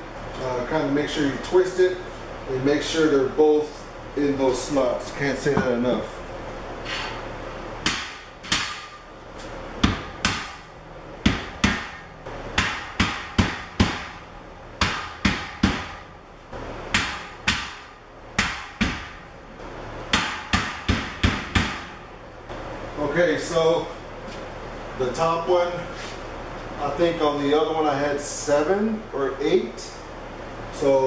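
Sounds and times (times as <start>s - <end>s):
rubber mallet striking steel: 7.8s - 9.1s, 9.8s - 14.2s, 14.8s - 16.1s, 16.9s - 19.2s.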